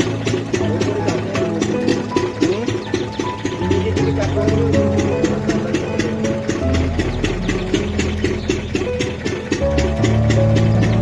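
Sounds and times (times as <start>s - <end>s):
background music with fast beat: 0.0s - 11.0s.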